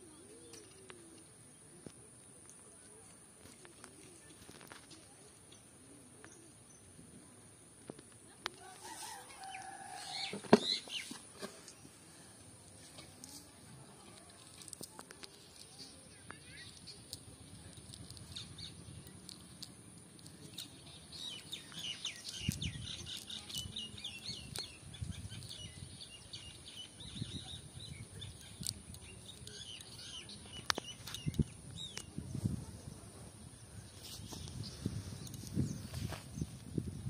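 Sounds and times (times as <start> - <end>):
net rustling on grass: 8.6 - 12.1
small birds chirping: 9.0 - 37.0.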